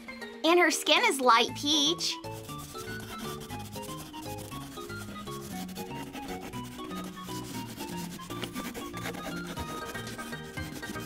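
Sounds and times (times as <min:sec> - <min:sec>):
background music of short notes: 0:00.0 - 0:11.0
wax crayon scratching on paper: 0:02.2 - 0:11.0.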